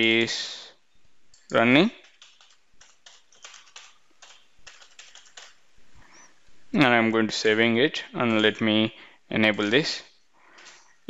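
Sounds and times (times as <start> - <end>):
typing on a keyboard: 1.4 - 5.6, 8.2 - 8.8.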